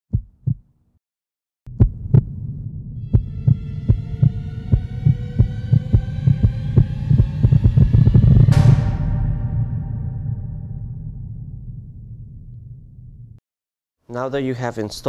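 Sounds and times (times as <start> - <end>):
heartbeat-like thumps: 0.1 - 0.6, 1.7 - 13.4
low synth hum: 1.7 - 13.4
steady higher tones: 1.7 - 13.4.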